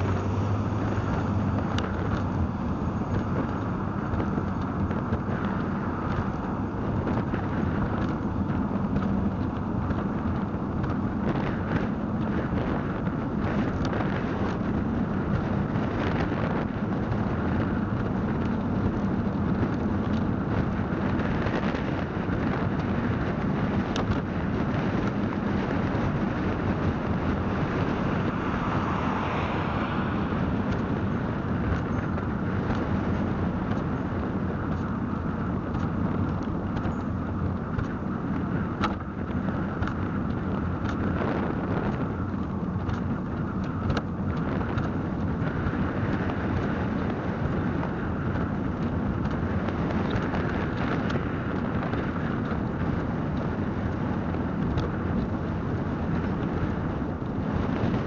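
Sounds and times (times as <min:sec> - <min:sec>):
wind noise: 0:00.0 - 0:58.0.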